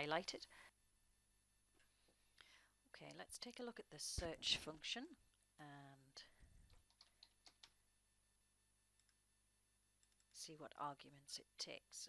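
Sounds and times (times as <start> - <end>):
faint breath: 1.8 - 2.8.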